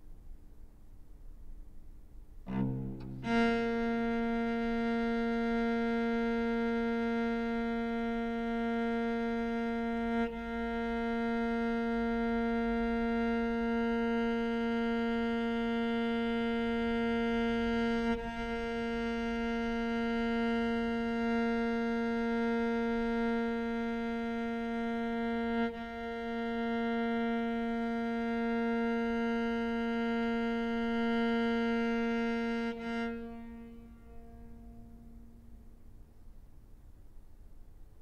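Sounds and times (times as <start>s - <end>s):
cello long bowed note: 2.5s - 36.2s.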